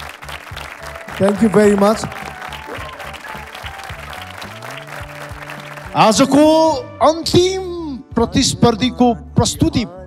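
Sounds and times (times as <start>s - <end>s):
audience applause: 0.0s - 6.2s
background music with low notes: 0.0s - 10.0s.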